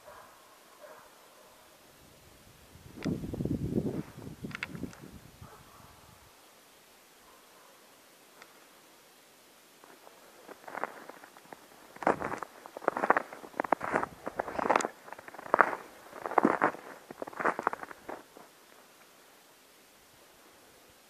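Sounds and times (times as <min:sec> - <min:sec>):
footsteps crunching in snow: 0:09.8 - 0:18.9.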